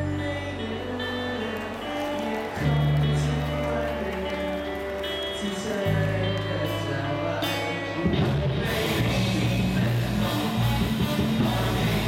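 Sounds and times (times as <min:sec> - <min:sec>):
electric guitars: 0:00.0 - 0:12.0.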